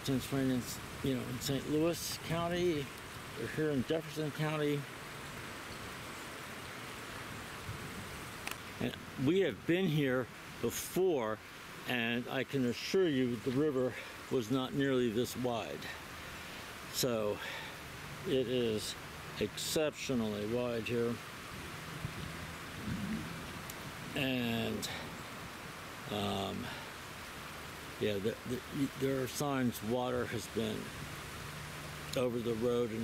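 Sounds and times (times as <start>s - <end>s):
river rushing: 0.0s - 33.0s.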